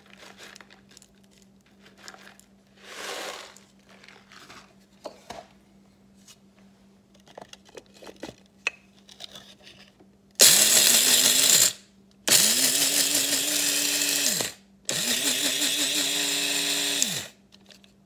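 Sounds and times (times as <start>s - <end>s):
coffee grinder motor: 10.4s - 17.4s.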